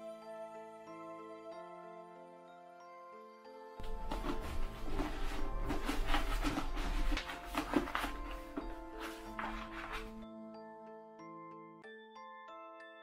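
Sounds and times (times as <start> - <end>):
background music: 0.0 - 13.0
paper crinkling and rustling: 3.8 - 10.2.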